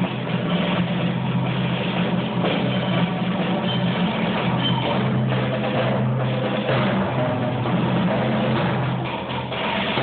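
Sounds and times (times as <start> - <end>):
percussion ensemble playing: 0.0 - 10.0.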